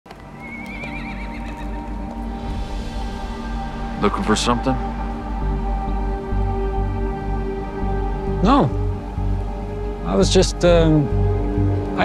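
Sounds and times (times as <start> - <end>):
low music score: 0.1 - 12.0
horse whinnying: 0.3 - 2.1.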